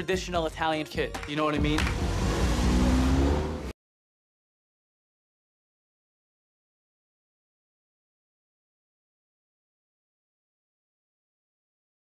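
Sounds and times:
car engine accelerating: 0:01.6 - 0:03.8.

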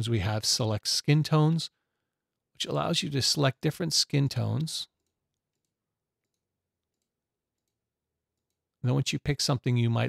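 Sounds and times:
man speaking: 0:00.0 - 0:01.7, 0:02.6 - 0:04.9, 0:08.8 - 0:10.0.

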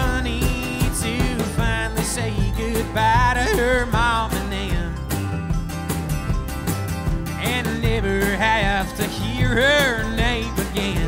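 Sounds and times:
acoustic guitar: 0:00.0 - 0:11.0
drums: 0:00.0 - 0:11.0
electric bass: 0:00.0 - 0:11.0
mandolin: 0:00.0 - 0:11.0.

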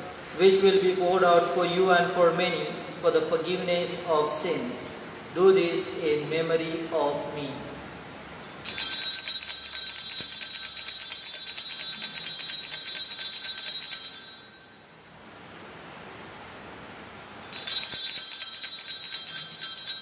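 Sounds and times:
altar bells jingling: 0:08.4 - 0:15.0, 0:17.3 - 0:20.0.

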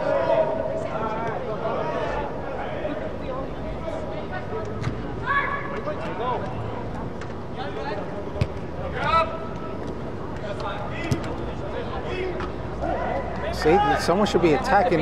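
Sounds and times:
low background noise: 0:00.0 - 0:15.0
players calling out: 0:00.0 - 0:15.0.

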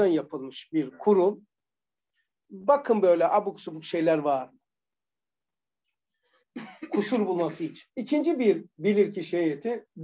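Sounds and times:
man speaking: 0:00.0 - 0:01.4, 0:02.5 - 0:04.5, 0:06.9 - 0:10.0.

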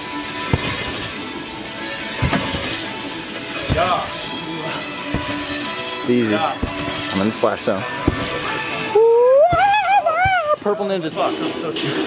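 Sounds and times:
background music: 0:00.0 - 0:12.0
trampoline bounce thumps: 0:00.4 - 0:01.4, 0:02.1 - 0:04.3, 0:05.1 - 0:10.8
person crying out: 0:09.0 - 0:10.6.

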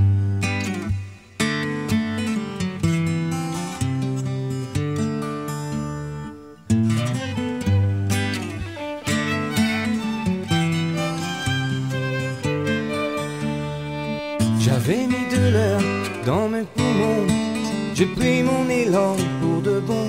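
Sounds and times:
acoustic guitar plucked chords: 0:00.0 - 0:20.0.

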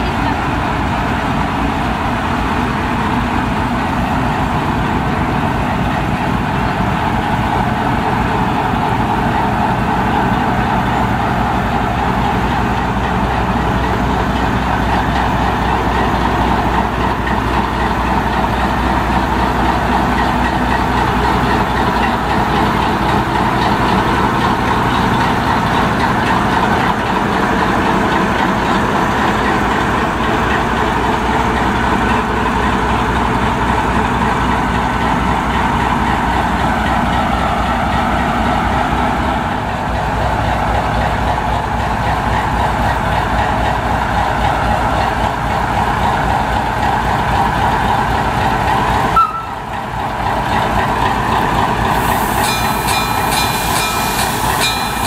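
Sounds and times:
diesel locomotive engine idling: 0:00.0 - 0:55.0.

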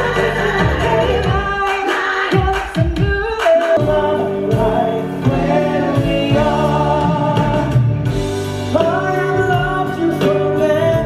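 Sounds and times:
backing music: 0:00.0 - 0:11.0
singers performing together: 0:00.0 - 0:11.0.

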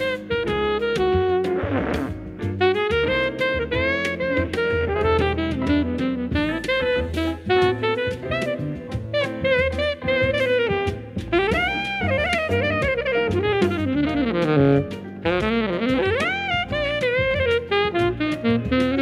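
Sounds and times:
drum beat and bass backing: 0:00.0 - 0:19.0
saxophone playing jazzy melody: 0:00.0 - 0:19.0.

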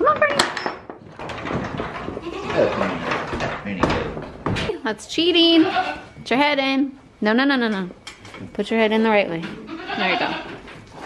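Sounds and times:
goat bleating: 0:02.2 - 0:02.9, 0:05.4 - 0:06.1, 0:09.6 - 0:10.6.

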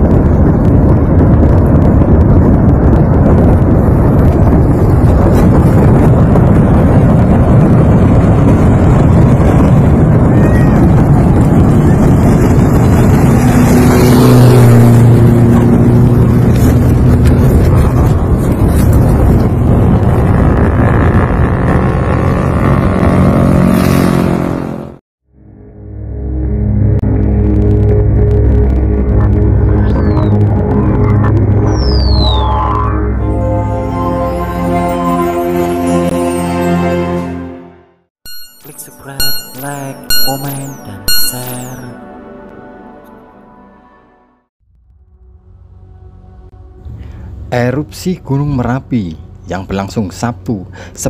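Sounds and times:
vehicle engine hum: 0:00.0 - 0:33.4, 0:44.6 - 0:51.0
low outdoor roar: 0:00.0 - 0:35.2, 0:44.6 - 0:50.5.

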